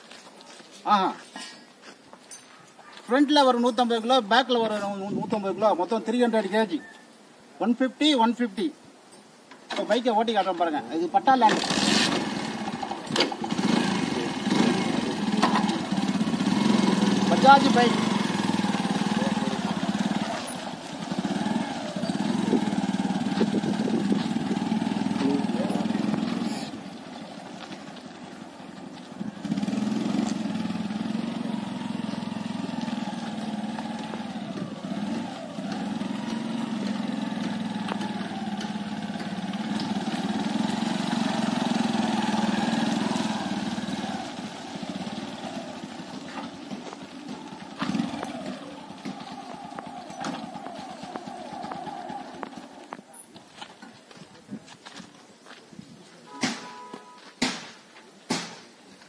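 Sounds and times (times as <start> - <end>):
motorcycle engine running: 11.6 - 53.3.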